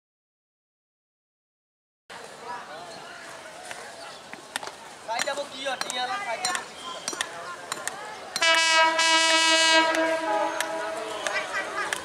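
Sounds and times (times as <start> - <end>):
diesel locomotive horn blast: 8.4 - 11.4.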